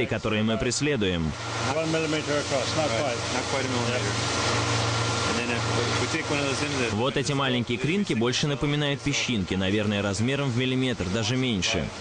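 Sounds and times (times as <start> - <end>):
low machine hum: 0.0 - 12.0
water rushing through net: 1.4 - 7.0.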